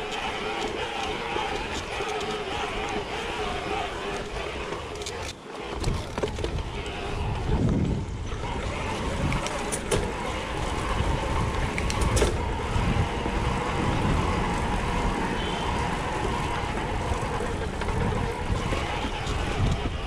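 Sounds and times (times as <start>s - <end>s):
bike rattle: 0.0s - 20.0s
bike tyres rumbling on cobblestones: 0.0s - 20.0s.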